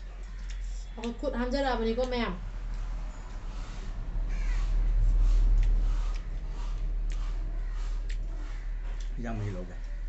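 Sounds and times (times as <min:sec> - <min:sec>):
steady low hum: 0:00.0 - 0:10.0
crow cawing: 0:04.3 - 0:04.9, 0:07.5 - 0:10.0.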